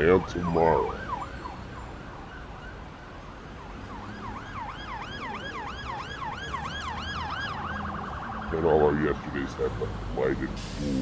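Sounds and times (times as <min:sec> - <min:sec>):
siren yelping: 0:00.0 - 0:03.0, 0:03.6 - 0:09.0
low traffic rumble: 0:00.0 - 0:11.0.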